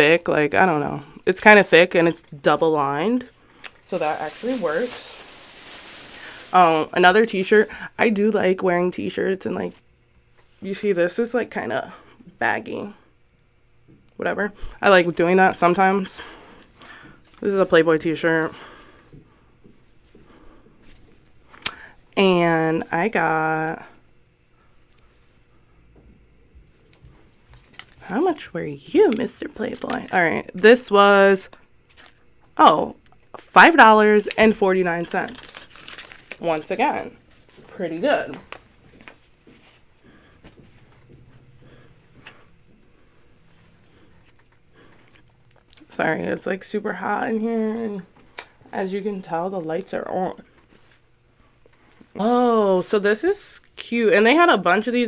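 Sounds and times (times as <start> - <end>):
low steady hum: 0.0 - 55.0
clothing rustling: 3.8 - 7.8, 35.3 - 45.2.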